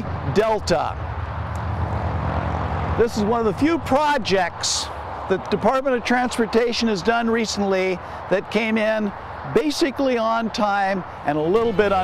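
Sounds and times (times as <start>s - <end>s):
highway traffic rumble: 0.0s - 12.0s.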